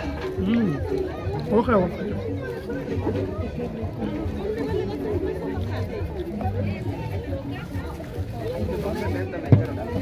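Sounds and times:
background music: 0:00.0 - 0:10.0
people chattering: 0:00.0 - 0:10.0.

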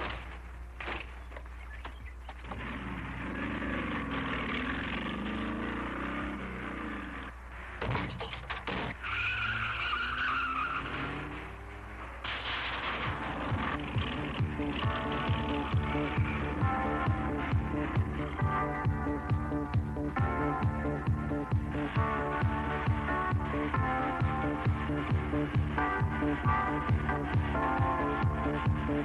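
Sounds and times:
car engines revving: 0:00.0 - 0:29.0
tire squeal: 0:01.7 - 0:16.6
music with steady beat: 0:13.2 - 0:29.0.

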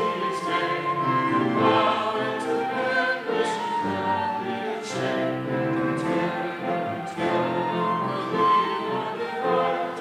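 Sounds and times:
group singing sacred song: 0:00.0 - 0:10.0.

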